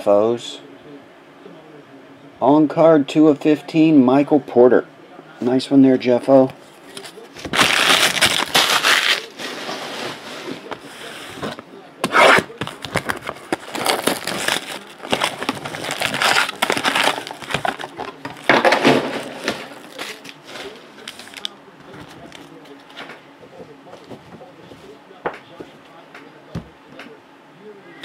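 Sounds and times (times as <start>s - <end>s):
foil packs crinkling: 6.9s - 9.6s, 12.4s - 22.6s
cardboard box tearing: 7.4s - 9.3s, 12.0s - 20.3s.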